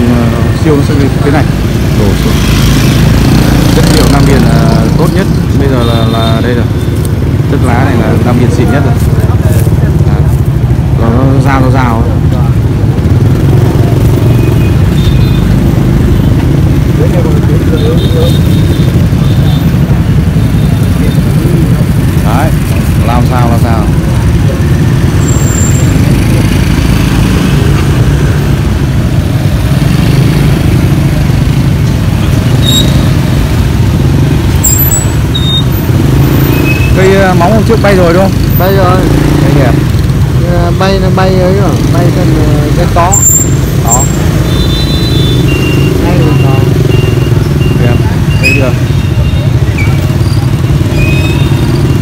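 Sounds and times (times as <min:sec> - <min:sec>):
motorbike engines running: 0:00.0 - 0:52.0
street traffic rumble: 0:00.0 - 0:52.0.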